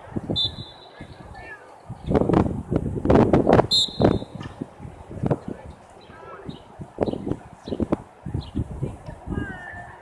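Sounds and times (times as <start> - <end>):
shrill referee whistle: 0.3 - 0.9, 3.7 - 4.4.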